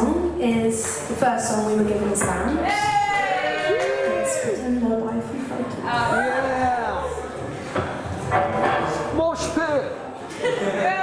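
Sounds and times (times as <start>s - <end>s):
people calling out and whooping: 2.6s - 4.8s, 5.8s - 7.4s.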